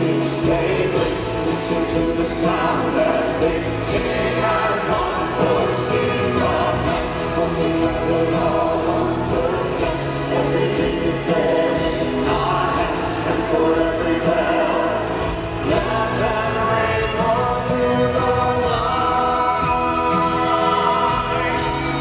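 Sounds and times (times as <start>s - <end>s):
choir holding long notes: 0.0s - 22.0s
rock band and orchestra playing: 0.0s - 22.0s
steady drum beat: 0.0s - 22.0s.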